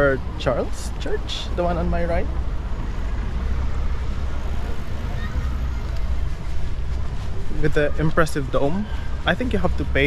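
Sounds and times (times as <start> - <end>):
city ambience rumble: 0.0 - 10.0.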